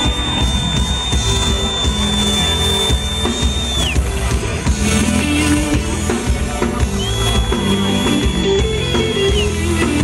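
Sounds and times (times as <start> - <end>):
bass guitar: 0.0 - 10.0
drum kit: 0.0 - 10.0.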